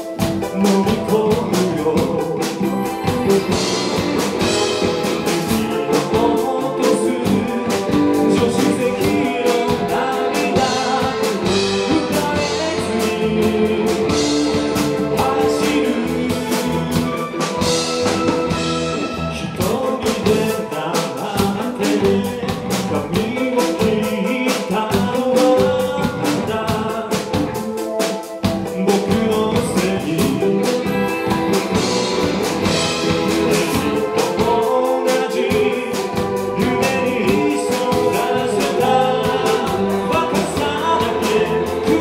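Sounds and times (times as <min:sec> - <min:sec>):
electric bass: 0:00.0 - 0:24.2, 0:24.8 - 0:27.8, 0:28.4 - 0:34.8, 0:35.4 - 0:42.0
drum kit: 0:00.0 - 0:42.0
electric guitar: 0:00.0 - 0:42.0
man singing lead vocal: 0:00.1 - 0:42.0.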